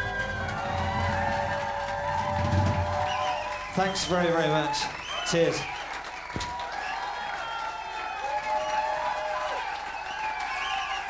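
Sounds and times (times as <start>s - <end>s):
tin whistle: 2.3s - 7.6s.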